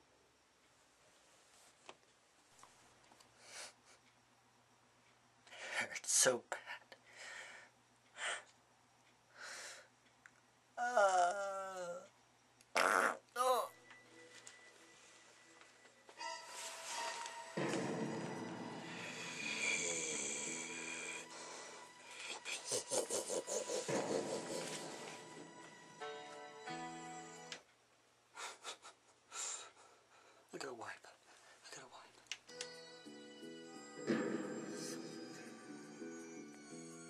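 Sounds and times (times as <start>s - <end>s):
farts: 12.8s - 13.3s.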